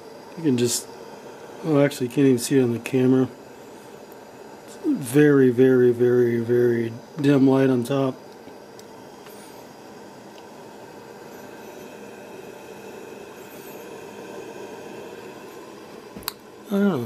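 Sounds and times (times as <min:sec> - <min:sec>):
gas lantern hissing: 0:00.0 - 0:17.0.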